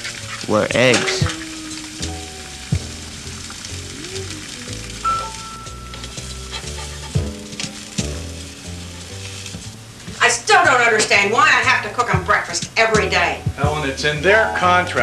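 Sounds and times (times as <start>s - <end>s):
eggs sizzling in a pan: 0.0s - 15.0s.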